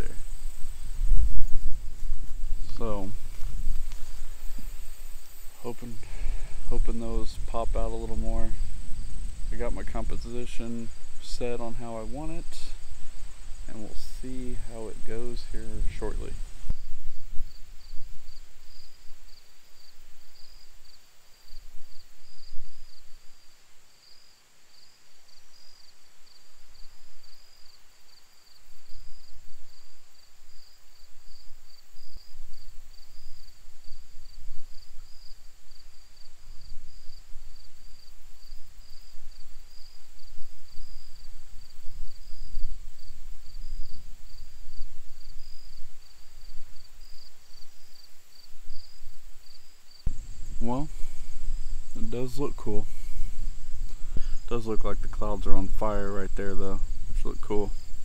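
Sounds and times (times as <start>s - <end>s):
wind buffeting microphone: 0.0s - 20.2s, 50.1s - 58.0s
insects chirping: 0.0s - 58.0s.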